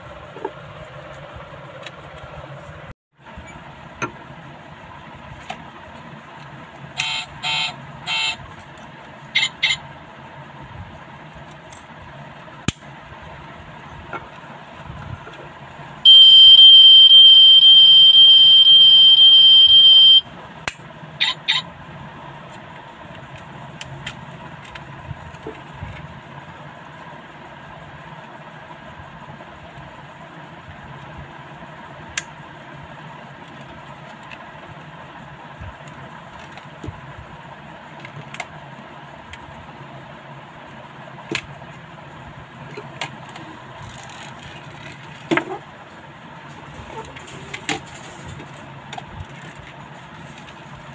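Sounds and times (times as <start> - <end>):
high electronic beep: 16.1 - 20.2.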